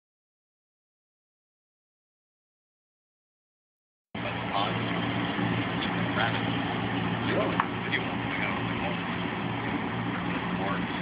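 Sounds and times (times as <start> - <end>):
people talking: 4.2 - 5.0, 5.8 - 6.6, 7.2 - 11.0
vehicle engine idling: 4.2 - 11.0.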